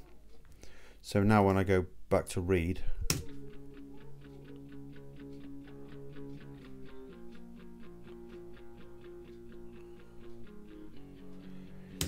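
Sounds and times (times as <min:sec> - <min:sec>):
electric guitar picked notes and chords: 0:03.2 - 0:12.0.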